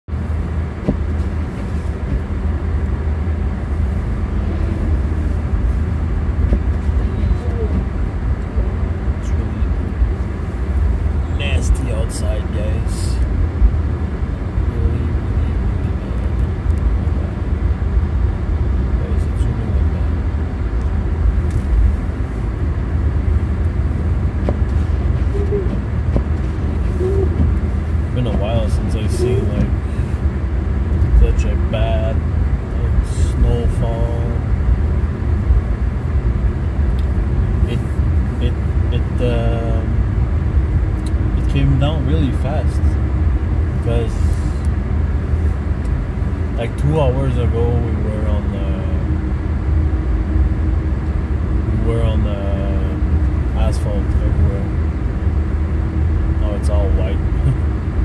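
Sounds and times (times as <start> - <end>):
road and engine rumble in car: 0.0 - 58.0.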